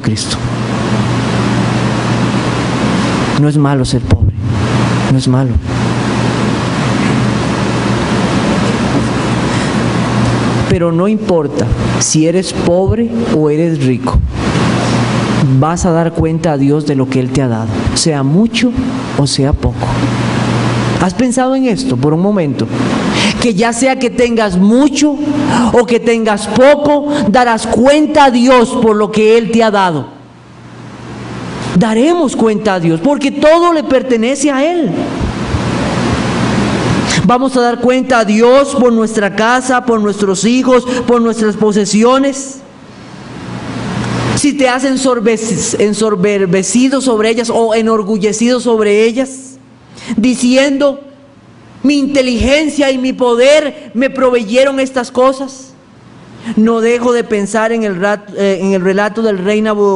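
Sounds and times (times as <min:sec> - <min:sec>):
low hum: 0:00.0 - 0:37.4
loud steady hiss: 0:00.0 - 0:59.9
air rushing on microphone: 0:11.6 - 0:15.9, 0:34.6 - 0:37.3.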